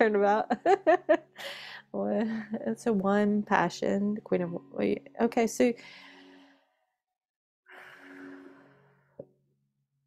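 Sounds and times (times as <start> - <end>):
woman sighing: 1.4 - 1.9.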